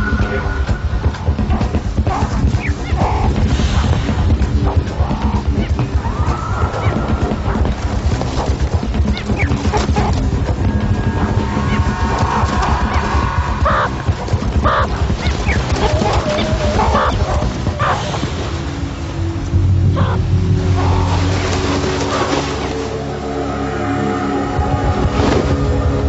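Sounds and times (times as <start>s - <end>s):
dramatic music with heavy beat: 0.0s - 26.0s.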